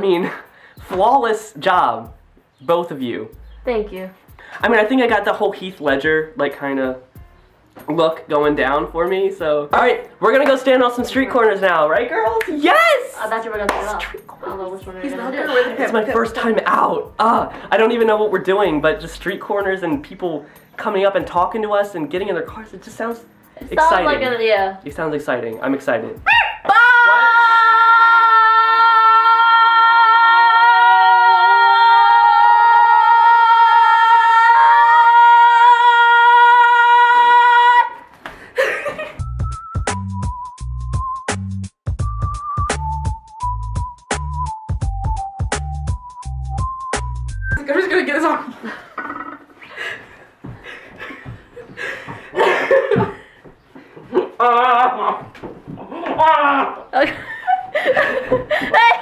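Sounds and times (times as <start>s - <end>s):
voices holding a loud aaah: 26.2s - 38.1s, 54.1s - 57.5s
people laughing and giggling: 38.3s - 39.3s, 48.2s - 59.0s.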